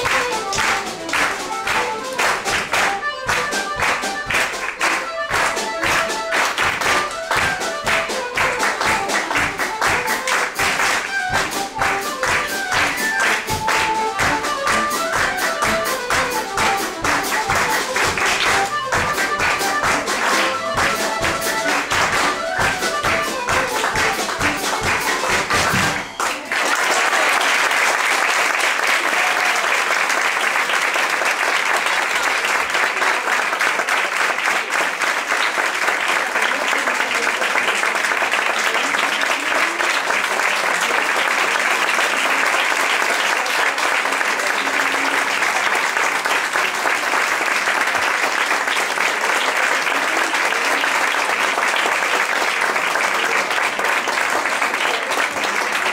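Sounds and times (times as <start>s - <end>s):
folk trio playing: 0.0s - 26.5s
audience applauding: 0.0s - 55.9s.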